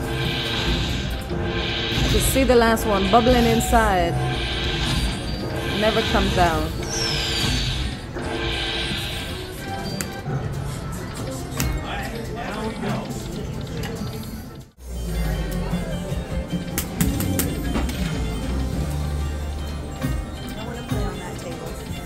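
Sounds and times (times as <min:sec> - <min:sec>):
slot machine music and chimes: 0:00.0 - 0:22.0.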